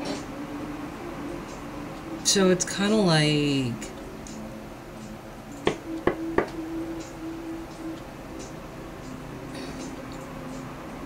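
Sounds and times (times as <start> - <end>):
sharp taps: 5.7 - 6.6.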